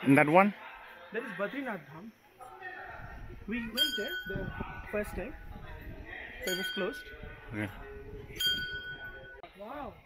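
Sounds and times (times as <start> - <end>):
temple bell ringing: 3.8 - 4.5, 6.4 - 7.1, 8.4 - 9.4.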